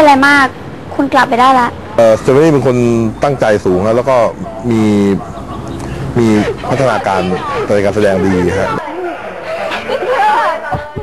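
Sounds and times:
quieter voices: 0:01.6 - 0:11.0
man speaking: 0:02.0 - 0:08.8.

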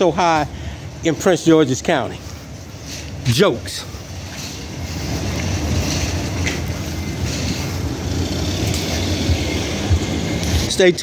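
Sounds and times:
low rumble of vehicle: 0:00.0 - 0:11.0.

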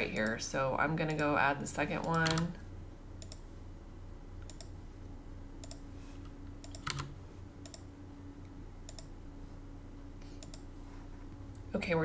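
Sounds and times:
faint low hum: 0:00.0 - 0:12.0
computer mouse clicking: 0:03.2 - 0:03.4, 0:04.4 - 0:04.7, 0:05.6 - 0:05.8, 0:06.6 - 0:07.8, 0:08.9 - 0:09.1, 0:10.4 - 0:10.6.

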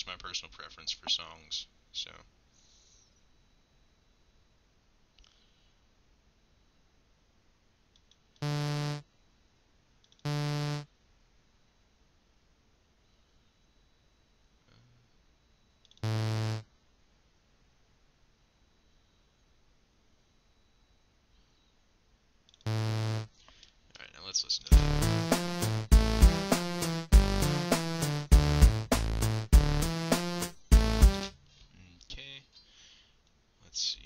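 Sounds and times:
short synthesizer notes: 0:08.4 - 0:09.0, 0:10.3 - 0:10.9, 0:16.0 - 0:16.6, 0:22.7 - 0:23.3.

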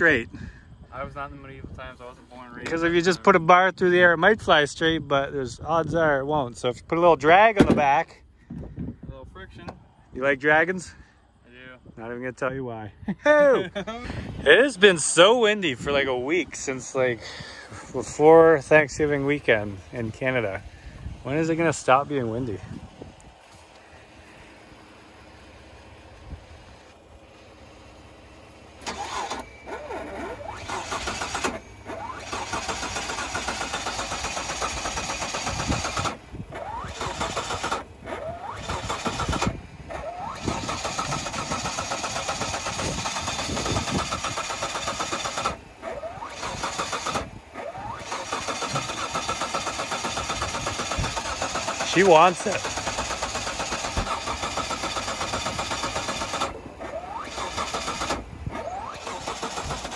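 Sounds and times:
starter motor cranking engine: 0:23.4 - 0:59.9.

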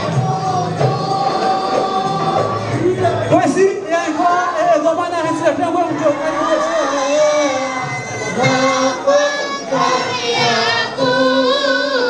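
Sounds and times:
men chanting together: 0:00.0 - 0:03.3, 0:05.9 - 0:12.0.

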